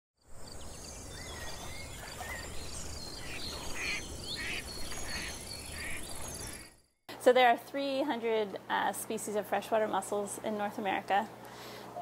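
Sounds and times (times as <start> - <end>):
repeating insect-like chirp: 0.3 - 6.8
birds calling and chirping: 0.3 - 6.9.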